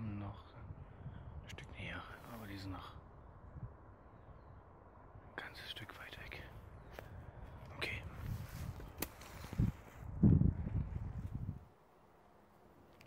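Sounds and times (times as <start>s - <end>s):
man whispering: 0.0s - 3.1s, 5.2s - 8.8s.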